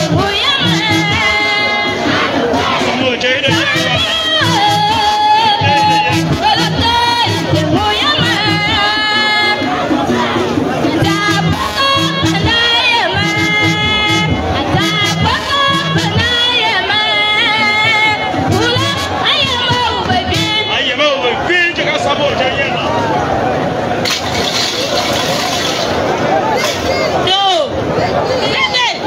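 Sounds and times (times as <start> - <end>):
music with steady beat: 0.0 - 16.7
crowd cheering and shouting: 0.0 - 29.0.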